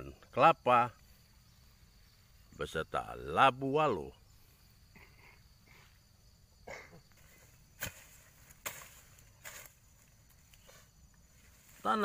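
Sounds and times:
hoe chopping into soil: 7.7s - 9.8s.

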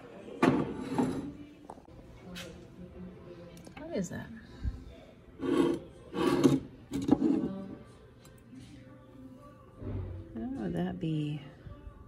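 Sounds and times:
ceramic planter scraping on table: 5.4s - 7.5s.

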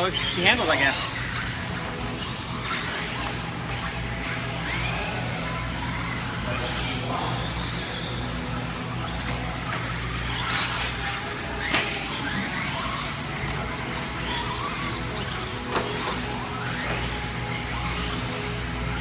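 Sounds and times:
electric motor whines: 0.0s - 19.0s
steady low hum: 0.0s - 19.0s.

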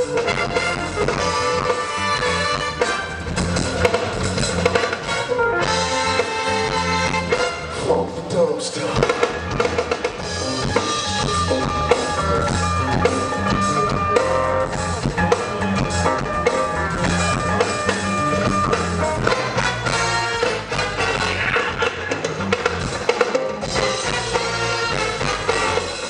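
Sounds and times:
drum kit beat: 0.0s - 7.8s, 8.9s - 26.0s
brass section playing chords: 0.0s - 8.3s, 8.9s - 26.0s
bass line: 0.0s - 26.0s.

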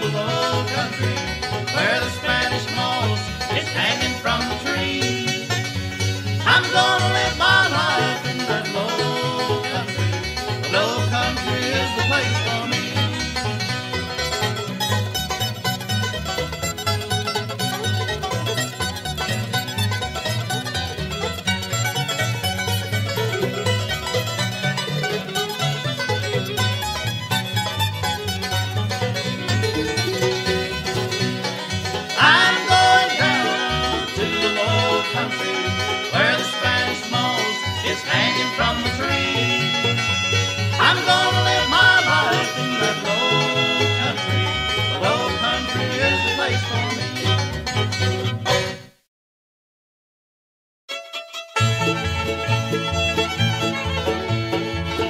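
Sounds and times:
fiddle: 0.0s - 48.9s, 50.9s - 55.0s
banjo: 0.0s - 49.0s, 50.9s - 55.0s
guitar: 0.0s - 49.0s, 51.0s - 55.0s.

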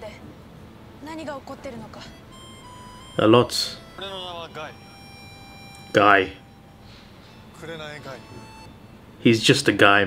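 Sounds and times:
quiet dialogue: 0.0s - 10.0s
soft background music: 0.0s - 10.0s.

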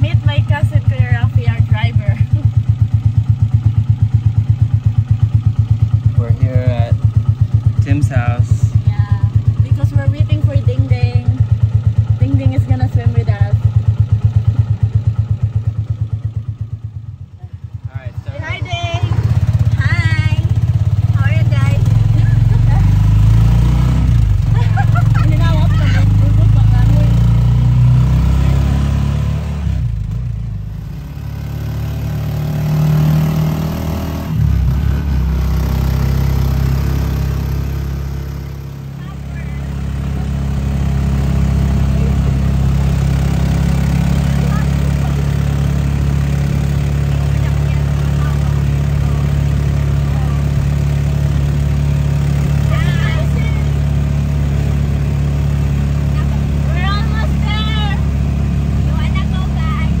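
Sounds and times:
voices: 0.0s - 2.5s, 6.2s - 7.1s, 7.8s - 13.7s, 17.4s - 27.4s, 38.4s - 51.7s, 52.3s - 54.6s, 56.0s - 58.1s, 58.7s - 60.0s
vehicle engine humming: 0.0s - 60.0s.

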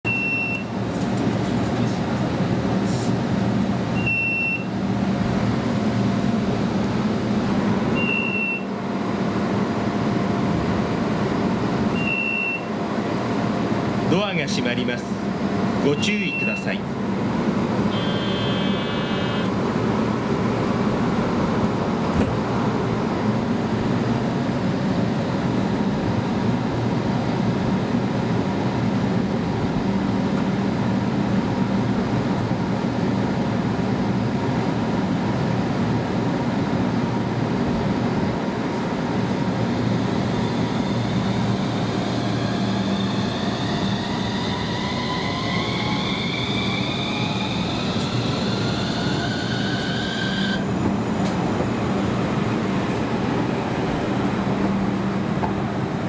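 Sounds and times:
tram low hum: 0.0s - 56.0s.

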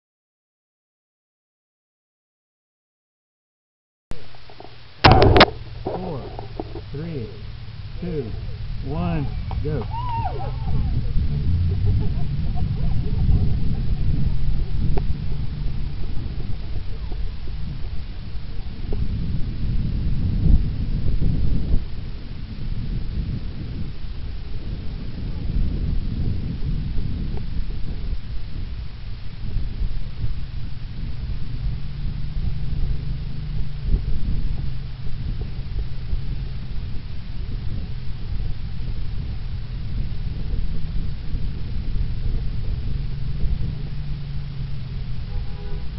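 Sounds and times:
background voices: 4.2s - 19.5s
steady low hum: 4.2s - 45.9s
wind buffeting microphone: 4.2s - 45.9s
microphone handling clatter: 4.4s - 7.4s, 9.2s - 18.0s.

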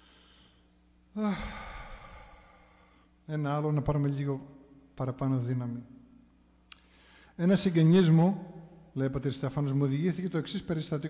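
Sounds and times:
man sighing into a microphone: 1.2s - 3.1s.

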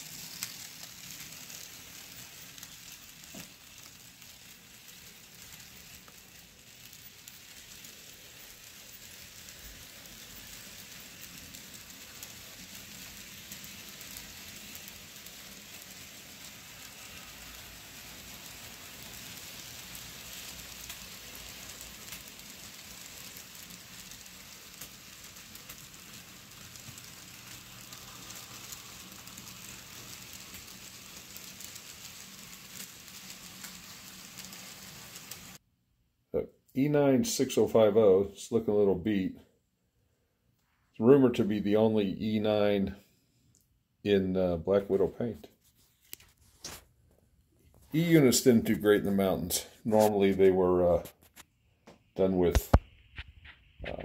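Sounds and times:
model train wheels rattling on rail: 0.0s - 35.6s.

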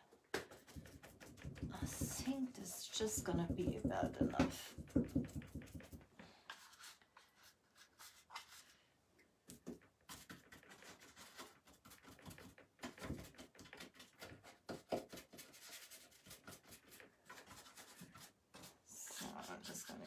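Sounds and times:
paintbrush strokes on wood: 0.6s - 8.8s.

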